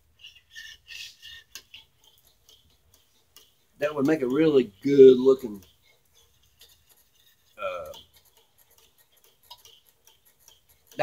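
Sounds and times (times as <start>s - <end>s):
metal rod scraping metal pot: 0.1s - 11.0s
light ticks: 1.0s - 5.8s.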